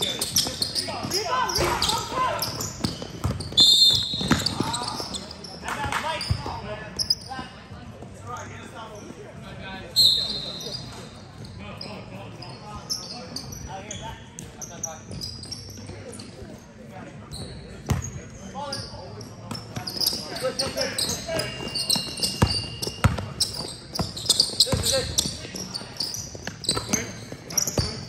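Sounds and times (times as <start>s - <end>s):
basketball bouncing on court: 0.1s - 5.0s, 20.0s - 25.4s, 26.4s - 28.0s
referee's whistle: 3.4s - 5.2s, 9.9s - 10.9s.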